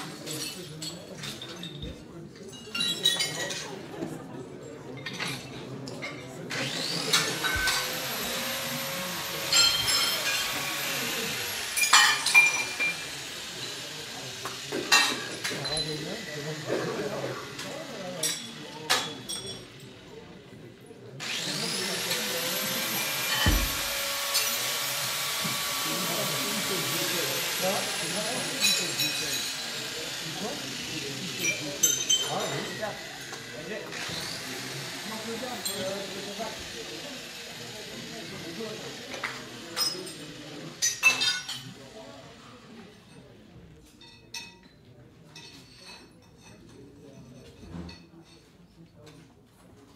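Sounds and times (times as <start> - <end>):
power tool motor whining: 6.5 - 18.0, 21.2 - 40.3.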